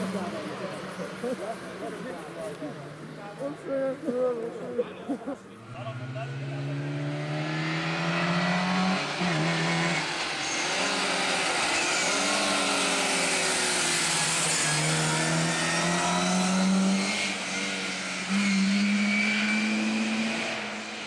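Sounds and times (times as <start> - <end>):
rally car engine revving: 0.0 - 3.2, 5.5 - 21.0.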